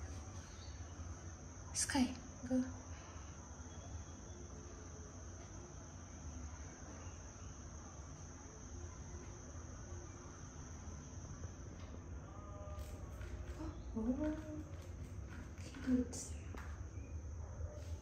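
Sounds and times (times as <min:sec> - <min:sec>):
cricket trilling: 0:00.0 - 0:18.0
low hum: 0:00.0 - 0:18.0.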